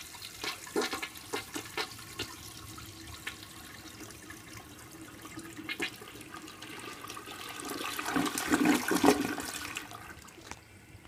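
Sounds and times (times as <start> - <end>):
toilet flushing: 0.0 - 11.0.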